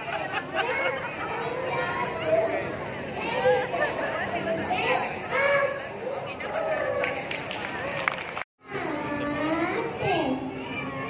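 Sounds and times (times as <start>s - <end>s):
children speaking through microphones: 0.0s - 11.0s.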